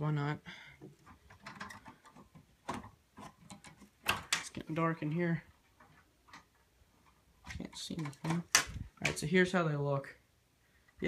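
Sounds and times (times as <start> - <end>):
window blinds clicking and rattling: 1.1 - 5.1, 7.4 - 9.2.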